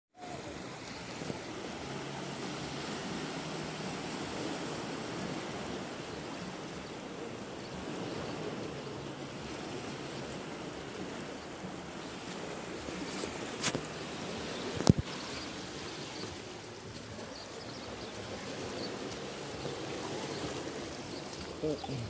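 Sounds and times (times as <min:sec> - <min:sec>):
sea waves washing on rocks: 0:00.2 - 0:22.0.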